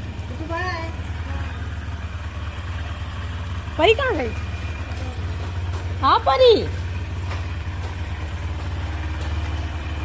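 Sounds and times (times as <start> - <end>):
motorcycle engine idling: 0.0 - 10.0.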